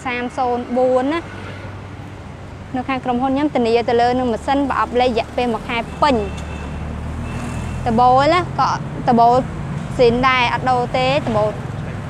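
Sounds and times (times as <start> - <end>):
woman speaking: 0.0 - 1.3, 2.7 - 6.4, 7.9 - 9.4, 10.0 - 11.6.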